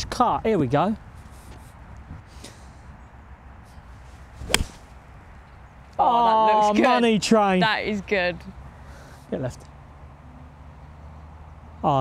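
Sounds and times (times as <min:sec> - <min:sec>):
golf club striking ball: 0:04.4 - 0:05.0.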